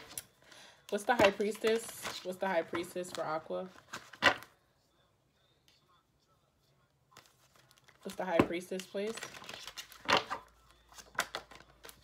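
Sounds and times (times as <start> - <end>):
cards riffling and clicking: 7.2 - 12.0
cards snapping: 7.2 - 12.0.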